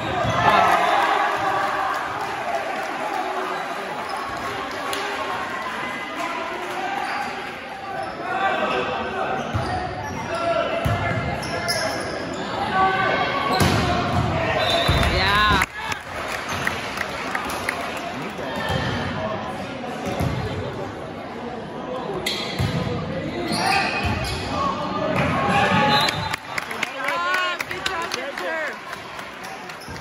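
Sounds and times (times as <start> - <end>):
voices echoing in a gymnasium: 0.0 - 30.0.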